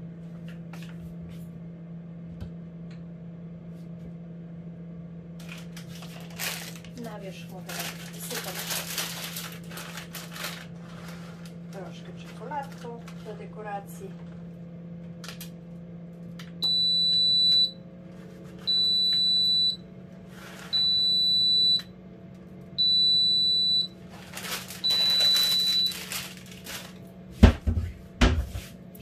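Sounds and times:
steady low hum: 0:00.0 - 0:29.0
high electronic oven beeps: 0:16.6 - 0:17.9, 0:18.6 - 0:19.9, 0:20.6 - 0:22.0, 0:22.7 - 0:26.4
rustling: 0:24.1 - 0:27.0.

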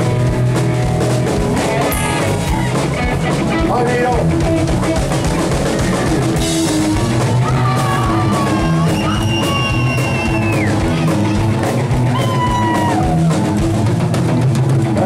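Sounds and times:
live rock band playing: 0:00.0 - 0:15.0
sliding electric guitar lead: 0:00.0 - 0:15.0.

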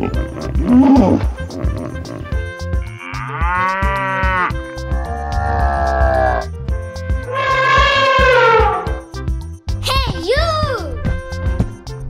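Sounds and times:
cow mooing: 0:00.0 - 0:06.5, 0:07.2 - 0:09.0
children's music with steady beat: 0:00.0 - 0:12.0.

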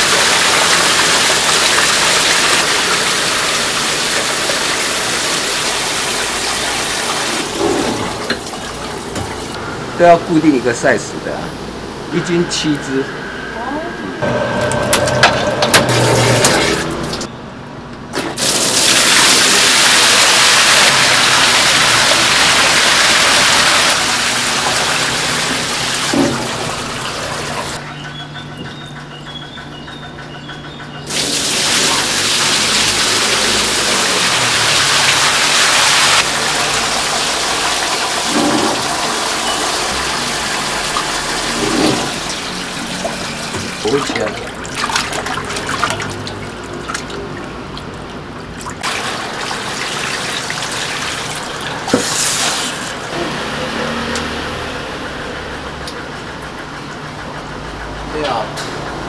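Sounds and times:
hose water gushing into steel trough: 0:18.4 - 0:27.8, 0:48.8 - 0:53.0.

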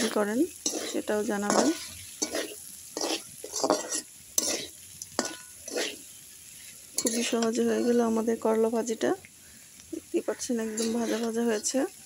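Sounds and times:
metal spatula scraping pan: 0:00.0 - 0:08.2, 0:10.6 - 0:12.0
light sizzle: 0:00.0 - 0:12.0.

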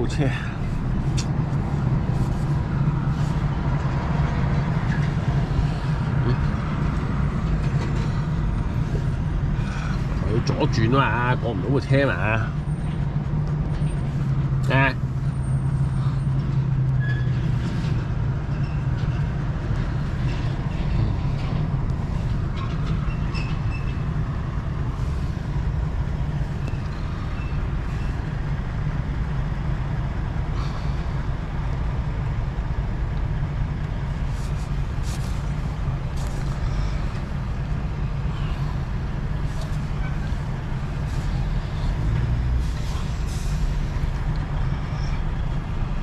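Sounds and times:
engine idling: 0:00.0 - 0:46.0.

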